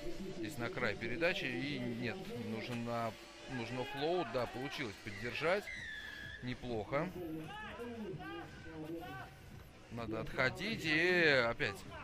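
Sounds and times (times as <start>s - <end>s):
man talking: 0.0s - 5.7s, 6.4s - 12.0s.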